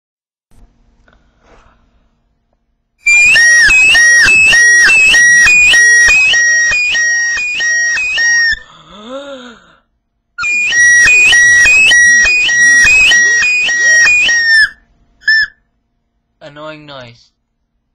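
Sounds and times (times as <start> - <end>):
toy whistle warbling: 3.1 - 8.6, 10.4 - 15.6.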